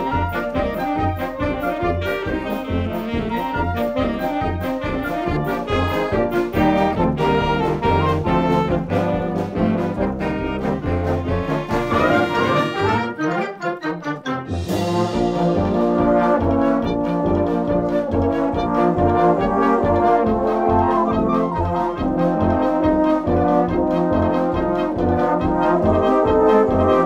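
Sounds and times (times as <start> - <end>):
concert band playing: 0.0 - 13.2, 14.5 - 27.0.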